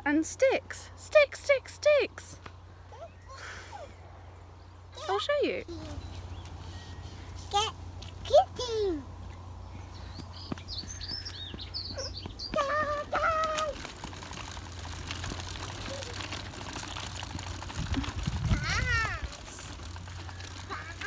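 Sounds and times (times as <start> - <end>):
small birds chirping: 2.4 - 14.4
child's voice: 2.9 - 3.9, 5.0 - 6.1, 7.4 - 9.1, 12.0 - 13.9, 18.4 - 19.8, 20.6 - 21.0.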